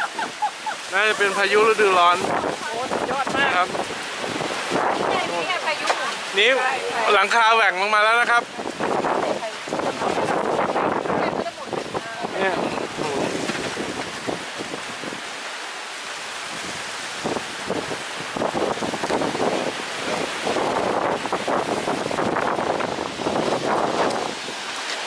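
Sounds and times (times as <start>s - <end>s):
gusting wind: 0.0s - 25.0s
heavy rain: 0.0s - 25.0s
wind buffeting microphone: 0.0s - 25.0s.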